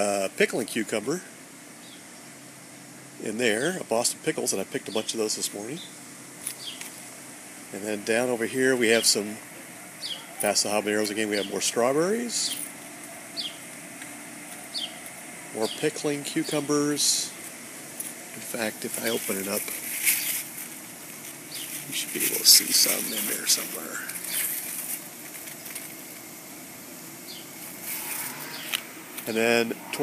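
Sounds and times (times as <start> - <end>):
steady background hiss: 0.0 - 30.0
steady background hum: 0.0 - 30.0
leaves and vines rustling: 6.3 - 30.0
bird chirping: 6.6 - 7.0, 10.0 - 11.6, 12.4 - 13.7, 14.7 - 16.7, 27.2 - 30.0.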